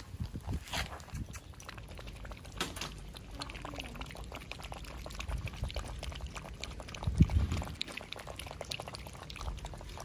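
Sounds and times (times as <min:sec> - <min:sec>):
puppies lapping liquid: 0:00.0 - 0:10.0.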